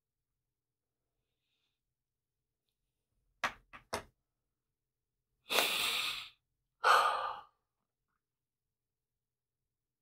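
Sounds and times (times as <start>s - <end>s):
man breathing heavily: 5.5s - 7.7s.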